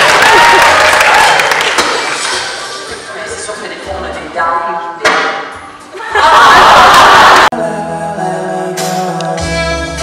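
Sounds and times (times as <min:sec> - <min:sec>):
crowd noise: 0:00.0 - 0:07.5
music: 0:01.8 - 0:10.0.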